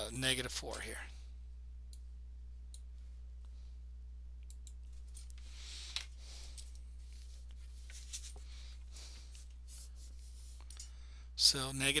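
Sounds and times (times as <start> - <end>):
low electrical hum: 0.0 - 12.0
computer mouse clicks: 4.4 - 5.0.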